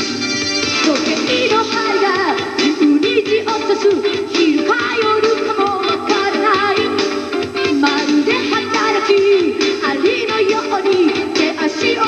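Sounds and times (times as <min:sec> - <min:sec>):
keyboards: 0:00.0 - 0:12.0
rock band playing live: 0:00.0 - 0:12.0.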